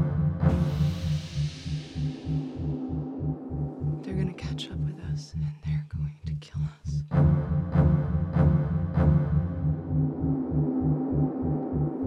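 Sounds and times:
low pulsing beat: 0.0 - 5.6, 6.9 - 12.0
breathy whispered voices: 4.0 - 7.1.

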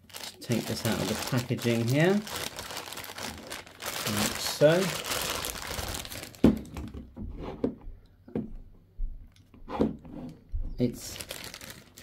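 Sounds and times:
plastic bag crinkling: 0.0 - 6.9, 10.9 - 12.0.

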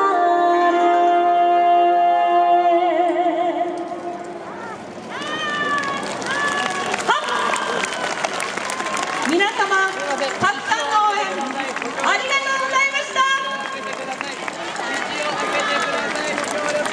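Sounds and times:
street crowd hubbub: 0.0 - 16.9.

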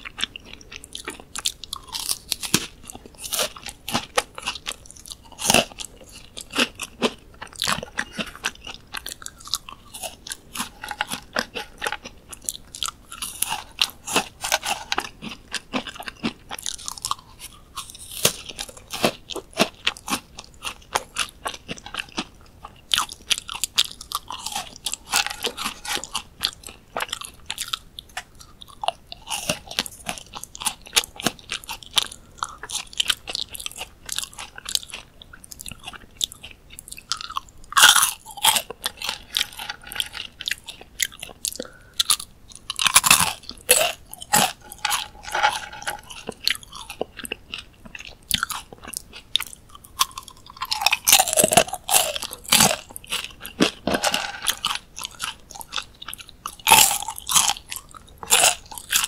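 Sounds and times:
crunching dried fruit chips: 0.0 - 59.0.

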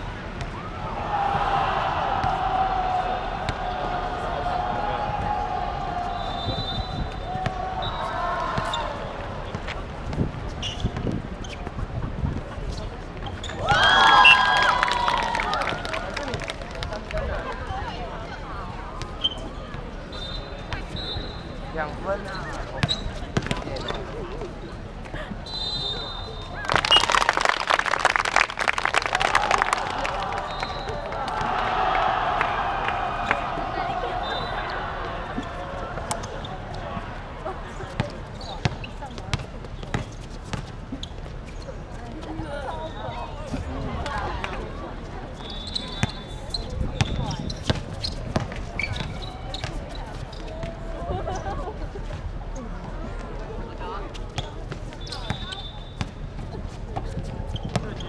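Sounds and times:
sneaker squeaks: 10.5 - 11.8, 12.7 - 13.6, 19.0 - 24.2, 30.4 - 31.0, 34.2 - 36.9, 37.9 - 43.7, 45.3 - 51.6, 54.1 - 58.0
people clapping: 13.6 - 17.6, 26.5 - 34.1.

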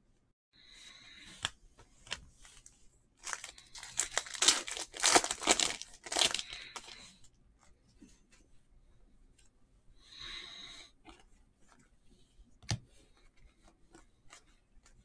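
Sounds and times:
foil wrapper tearing and crinkling: 3.2 - 7.0.

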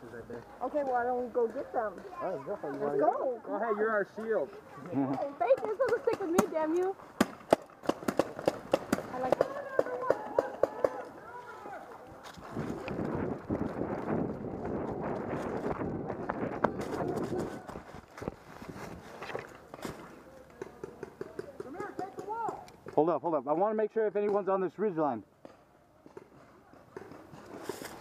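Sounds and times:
paintball markers firing: 5.5 - 11.1.

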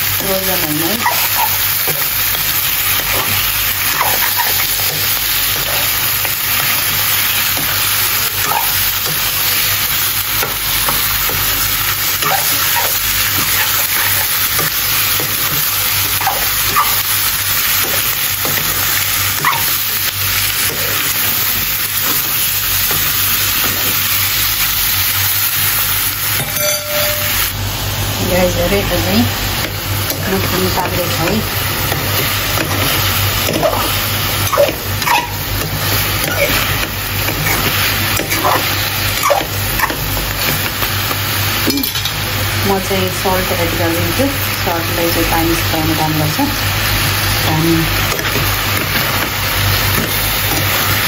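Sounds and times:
meat and onions sizzling in oil: 0.0 - 51.0.

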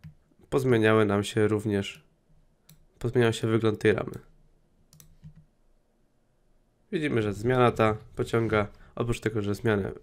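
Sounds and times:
computer mouse clicks: 4.9 - 5.5.

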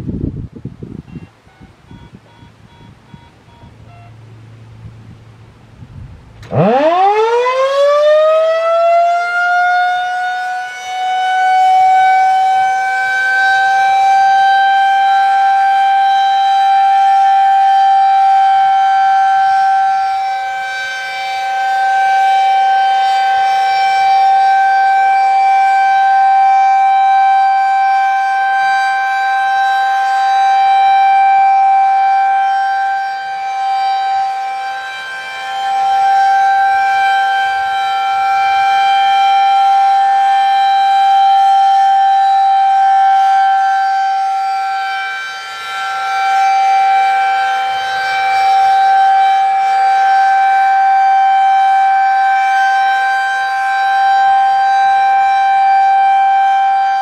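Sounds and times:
loud rotating siren wailing: 0.9 - 57.0.

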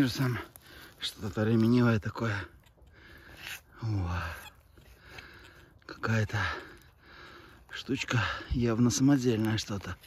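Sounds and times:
breathy sound: 2.5 - 8.6.

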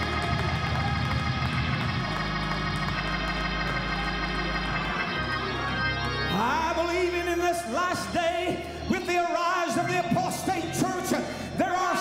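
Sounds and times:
organ playing chords: 0.0 - 12.0.

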